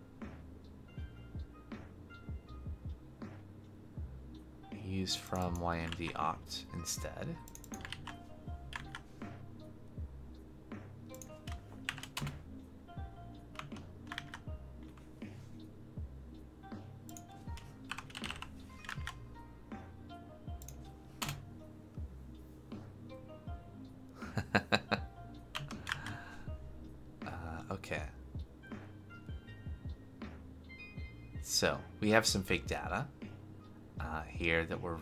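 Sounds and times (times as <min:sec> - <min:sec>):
music with steady beat: 0:00.0 - 0:35.0
computer keyboard typing: 0:07.4 - 0:09.1, 0:11.1 - 0:12.4, 0:13.6 - 0:15.0, 0:17.1 - 0:19.2, 0:20.6 - 0:21.4, 0:25.5 - 0:26.2.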